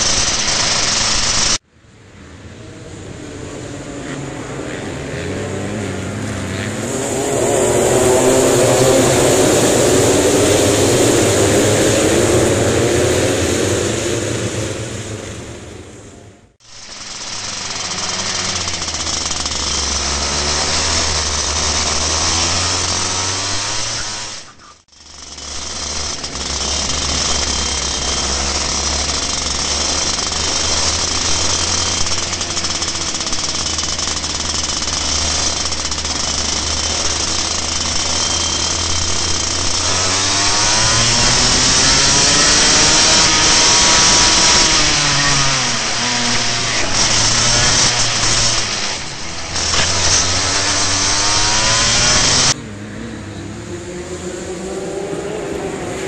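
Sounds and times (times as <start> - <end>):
kart engine racing: 0.0 - 56.0
other kart engines: 0.0 - 56.0.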